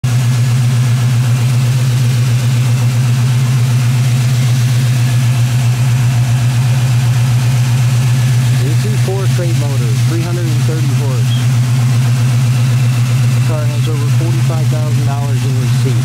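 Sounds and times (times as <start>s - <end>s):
engine idling: 0.0s - 16.0s.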